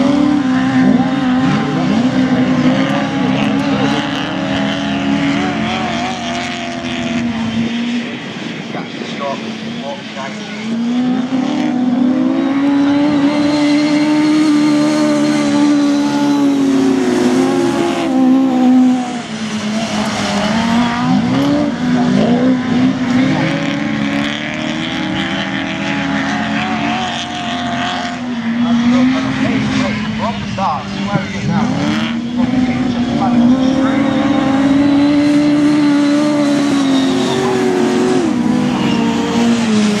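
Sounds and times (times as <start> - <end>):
race car engines revving: 0.0 - 40.0.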